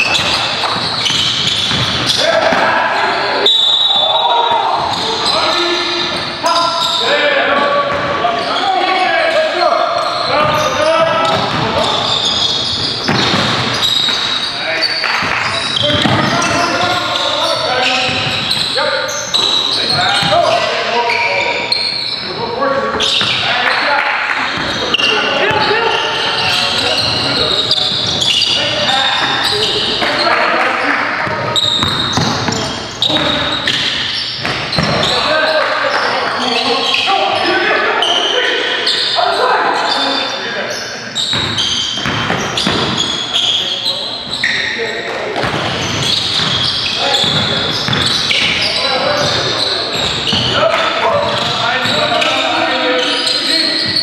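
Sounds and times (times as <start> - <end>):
voices echoing in a hall: 0.0 - 54.0
basketball bouncing on hardwood floor: 0.1 - 2.1, 31.2 - 33.4, 41.3 - 43.0, 47.2 - 48.6.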